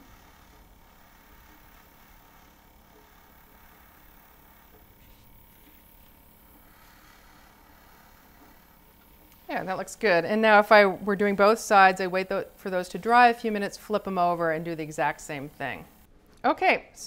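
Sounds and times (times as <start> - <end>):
airbrush hissing: 0.0 - 16.1.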